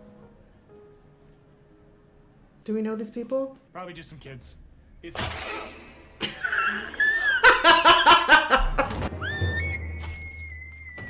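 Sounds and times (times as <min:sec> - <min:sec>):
woman laughing hard: 0:06.2 - 0:09.0.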